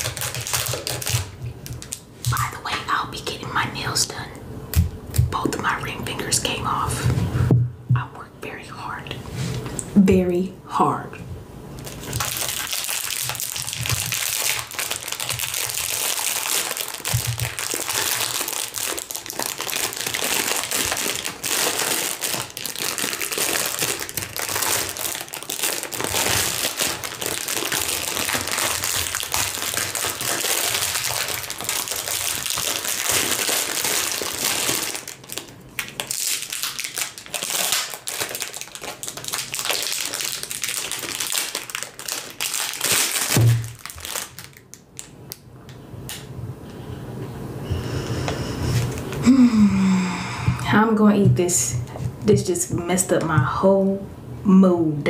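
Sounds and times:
cellophane bag crinkling: 0.0s - 2.6s, 11.8s - 45.2s.

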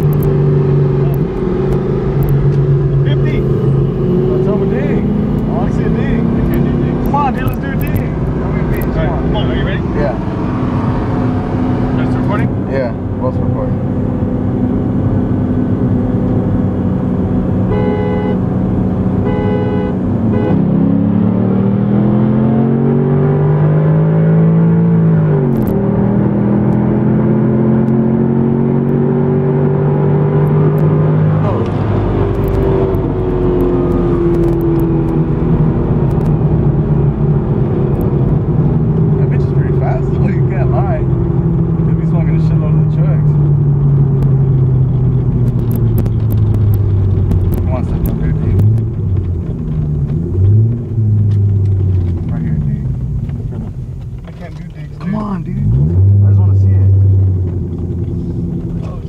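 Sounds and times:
car engine accelerating through gears: 0.0s - 59.0s.

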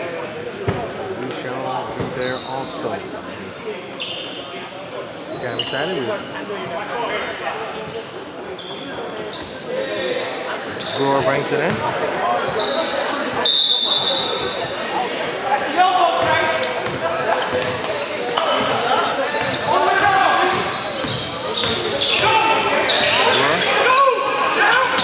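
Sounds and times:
voices echoing in hall: 0.0s - 25.0s.

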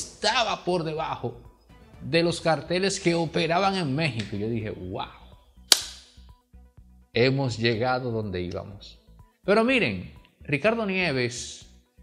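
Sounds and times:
faint background music: 0.0s - 12.0s
sharp hand clap: 5.7s - 6.2s.

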